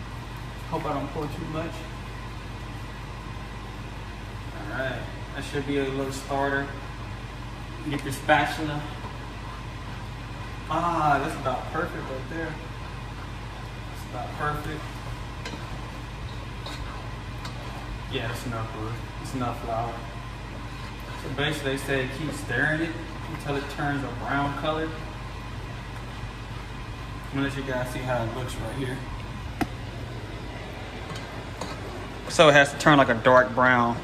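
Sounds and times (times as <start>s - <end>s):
low steady hum: 0.0s - 34.0s
spatula scraping a pot: 16.6s - 18.0s, 31.4s - 32.1s.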